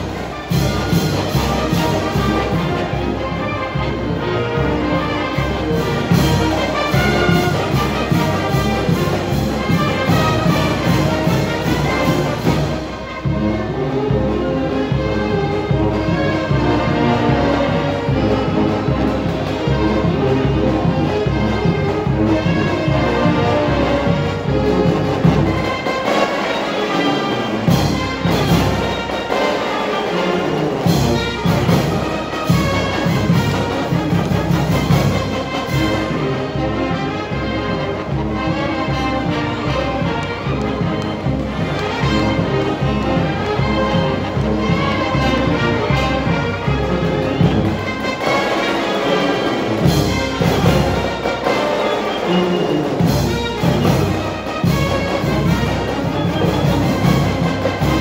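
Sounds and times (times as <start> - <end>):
brass marching band playing: 0.0 - 58.0.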